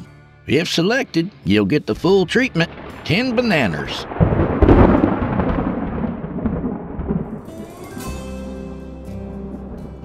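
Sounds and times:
music: 0.0 - 3.9, 7.4 - 10.0
thunder rumble: 2.2 - 10.0.

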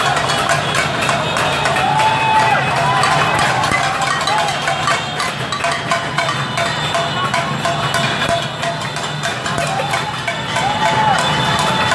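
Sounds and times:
horns honking: 0.0 - 11.9
motorbike engines running: 0.0 - 11.9
raised voices: 9.5 - 11.9.

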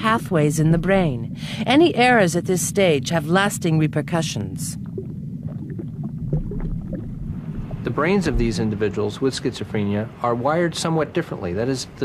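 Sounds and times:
low rumbling drone: 0.0 - 10.1
man narrating: 7.8 - 12.0.

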